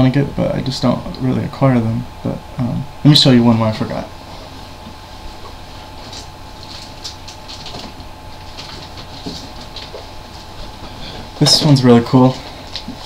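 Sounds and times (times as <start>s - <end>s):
low room hum: 0.0s - 13.0s
vinyl records rustling and clicking: 4.3s - 13.0s.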